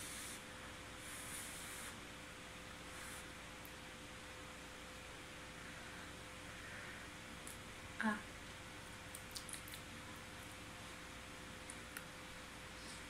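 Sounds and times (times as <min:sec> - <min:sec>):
steady faint hum: 0:00.0 - 0:13.0.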